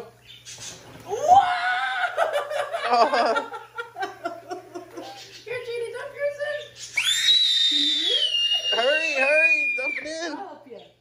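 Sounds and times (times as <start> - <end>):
child shrieking: 1.1 - 2.2, 7.0 - 10.3.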